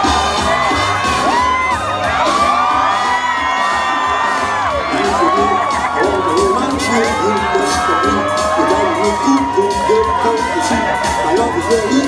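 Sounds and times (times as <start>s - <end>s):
crowd cheering and shouting: 0.0s - 12.0s
loud dance music: 0.0s - 12.0s.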